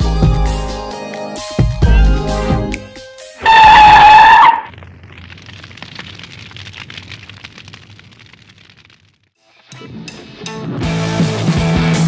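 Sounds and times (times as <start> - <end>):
crackling rumble: 4.0 - 9.4.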